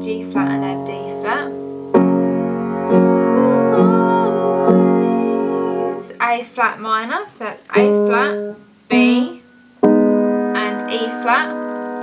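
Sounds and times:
piano chord ringing: 0.0s - 6.2s, 7.8s - 12.0s.

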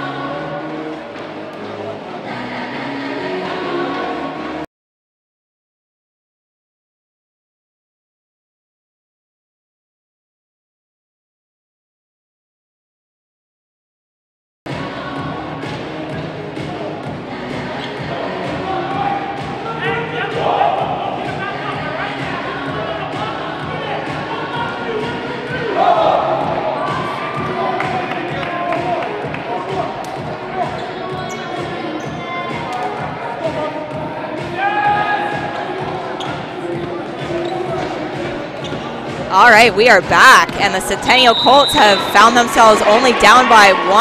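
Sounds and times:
music playing in hall: 0.0s - 4.6s, 14.7s - 44.0s.

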